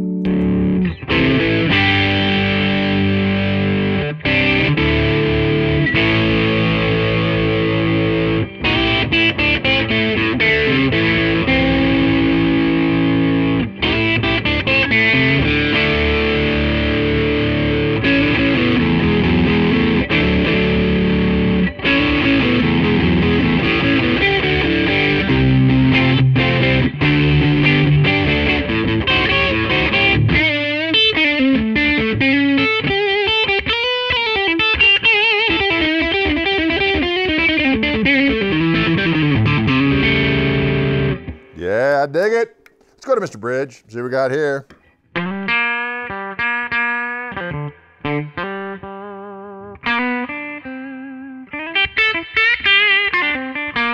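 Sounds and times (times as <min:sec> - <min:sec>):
overdriven electric guitar: 0:00.0 - 0:41.9, 0:44.7 - 0:53.9.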